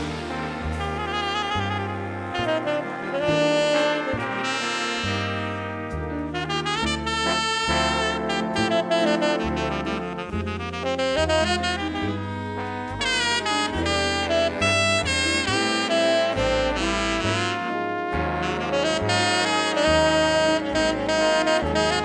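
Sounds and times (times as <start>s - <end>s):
jazz big band playing: 0.0s - 22.0s
tenor saxophone solo: 0.0s - 22.0s
walking bass line: 0.0s - 22.0s.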